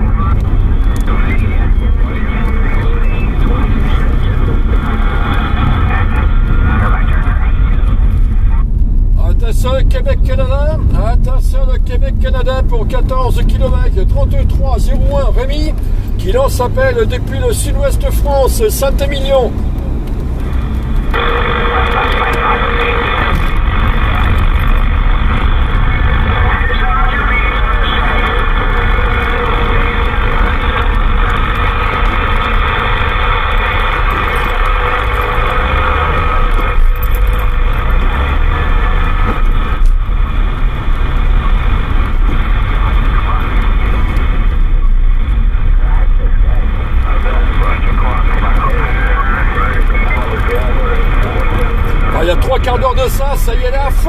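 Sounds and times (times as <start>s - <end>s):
radio static hiss: 0.0s - 9.8s, 20.5s - 37.0s, 37.6s - 54.0s
garbled radio voices: 0.0s - 19.7s, 20.5s - 40.1s, 41.0s - 54.0s
vehicle rumble: 0.0s - 54.0s.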